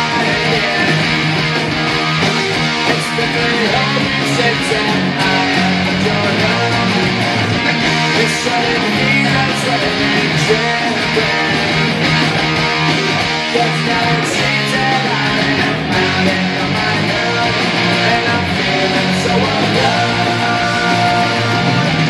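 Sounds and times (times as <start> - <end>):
electric guitar strummed chords: 0.0 - 22.0.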